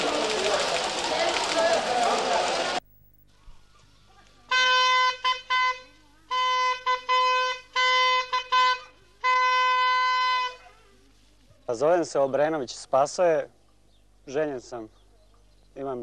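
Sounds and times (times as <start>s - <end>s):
postman's horn blasts: 4.5s - 10.6s.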